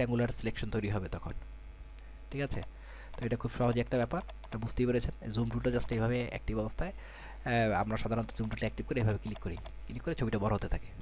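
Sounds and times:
man talking: 2.3 - 11.0
computer mouse clicks: 2.5 - 4.7, 5.8 - 6.0, 8.2 - 9.7.

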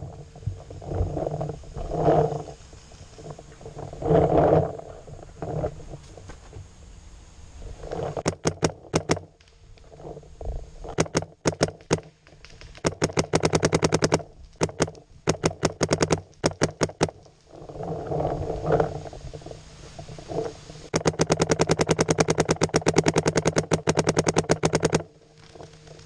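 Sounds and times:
scuffling and scraping: 0.8 - 6.8
paintball marker firing: 8.2 - 9.3, 11.0 - 17.2, 20.9 - 25.0.

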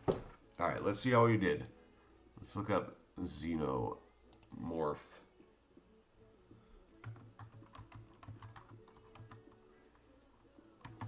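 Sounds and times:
typing on computer keyboard: 7.0 - 10.0, 10.8 - 11.0.

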